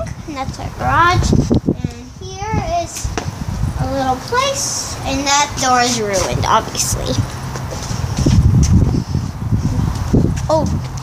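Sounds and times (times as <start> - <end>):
footsteps and handling bumps: 5.2 - 9.0.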